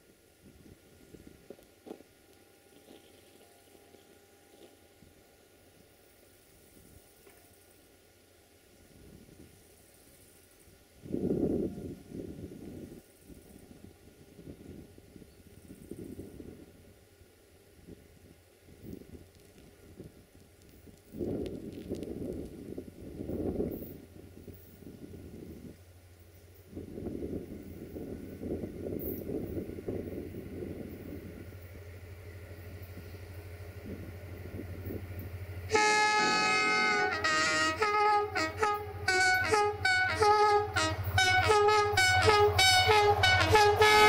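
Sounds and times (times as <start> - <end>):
diesel locomotive engine hum: 0.0 - 44.0
wind buffeting microphone: 11.0 - 26.0, 26.6 - 35.9.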